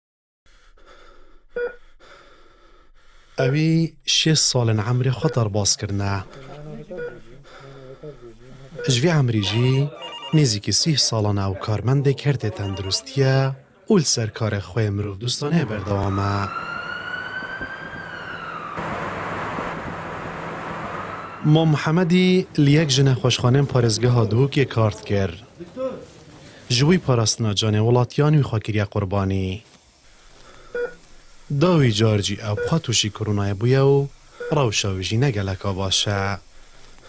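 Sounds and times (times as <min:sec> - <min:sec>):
ambulance siren wailing: 0:09.4 - 0:10.6, 0:12.4 - 0:13.2, 0:15.3 - 0:23.9
road noise: 0:15.1 - 0:26.8.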